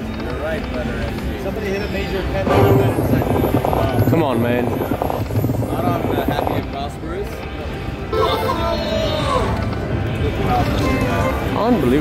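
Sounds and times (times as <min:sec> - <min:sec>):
steady low rumble: 0:02.4 - 0:07.0.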